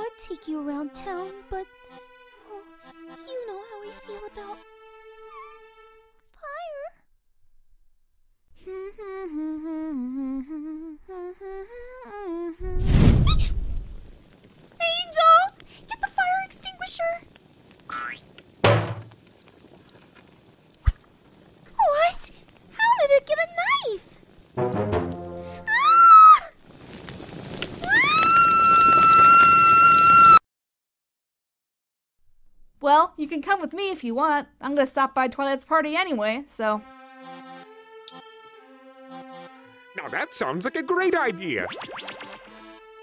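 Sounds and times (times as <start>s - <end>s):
woman humming a gentle tune: 8.6s - 12.6s
whoosh of flames: 12.6s - 14.8s, 26.5s - 29.3s
high-pitched cartoon scream: 25.6s - 26.6s, 27.8s - 30.4s.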